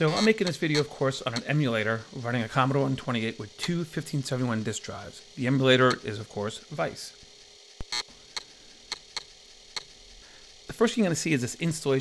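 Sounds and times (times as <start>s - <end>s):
disk drive clicking: 0.0s - 1.6s, 7.8s - 10.0s.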